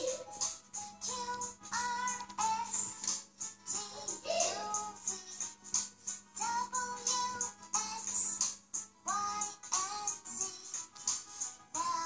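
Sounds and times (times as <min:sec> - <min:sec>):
children's song from laptop speakers: 0:00.0 - 0:12.0.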